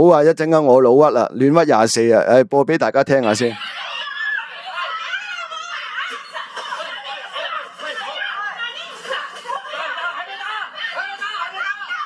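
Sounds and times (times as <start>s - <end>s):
voices arguing on phone recording: 0.0s - 12.0s.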